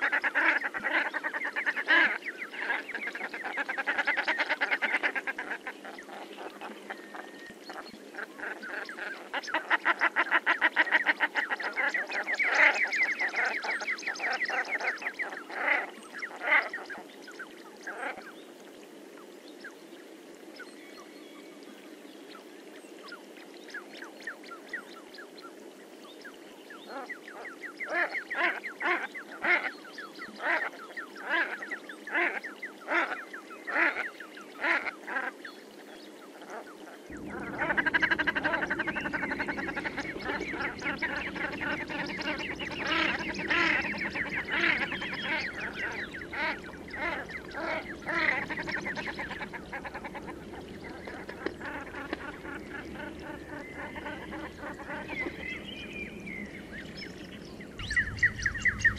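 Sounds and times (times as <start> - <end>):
steady background noise: 37.1 - 58.9.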